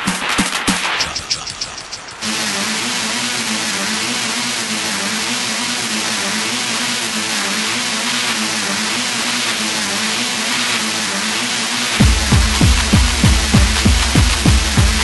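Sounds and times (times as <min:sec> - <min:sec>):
harsh noise wash: 0:00.6 - 0:15.0.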